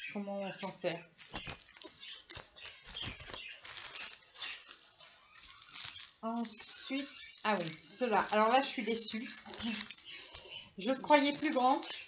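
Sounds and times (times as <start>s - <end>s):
packaging crinkling: 1.2s - 12.0s
budgerigars chirping: 1.4s - 12.0s.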